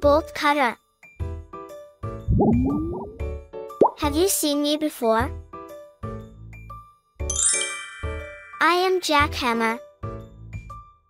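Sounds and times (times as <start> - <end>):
low note: 2.3 - 3.2
bright bell-like chime: 7.3 - 8.8.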